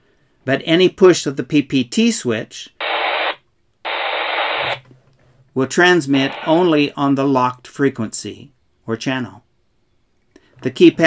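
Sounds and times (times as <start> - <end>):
radio static hiss: 2.8 - 4.8, 5.9 - 6.9.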